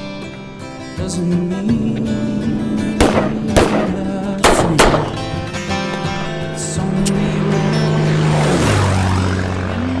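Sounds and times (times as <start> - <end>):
sharp gunshots with ringing tails: 2.9 - 5.5.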